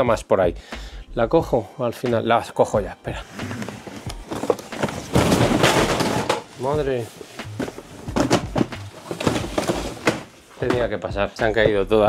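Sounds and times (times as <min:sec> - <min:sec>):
cardboard boxes falling over: 0:03.5 - 0:06.6, 0:07.5 - 0:10.9.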